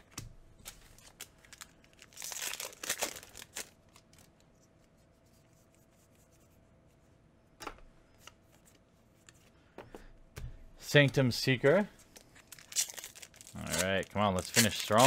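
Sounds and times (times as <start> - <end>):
foil wrapper tearing: 1.0 - 4.3, 12.4 - 15.0.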